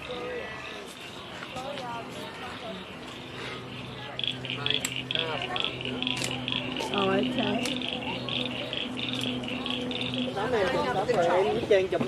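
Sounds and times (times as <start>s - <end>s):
frogs trilling: 0.0s - 11.9s
people talking: 0.0s - 12.0s.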